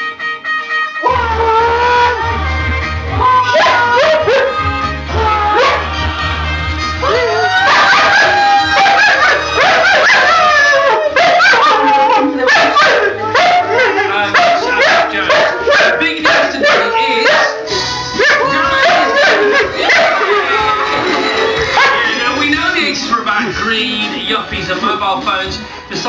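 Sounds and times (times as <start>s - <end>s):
music from television: 0.0s - 26.0s
dog howling: 1.0s - 2.5s, 3.2s - 6.4s, 7.0s - 22.2s
dog barking and yipping: 3.5s - 4.6s, 7.7s - 20.4s, 21.7s - 22.1s.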